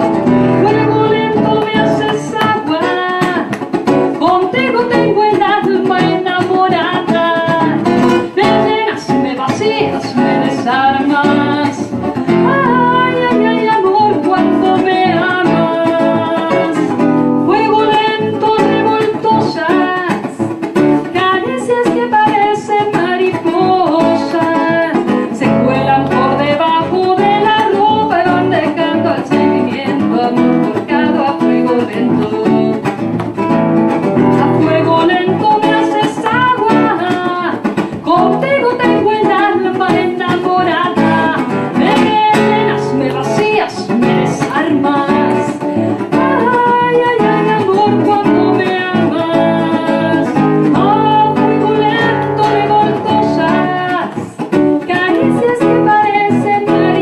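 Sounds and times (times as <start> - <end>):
woman singing slow song: 0.0 - 33.0, 34.3 - 57.0
acoustic guitar plucked and strummed: 0.0 - 57.0.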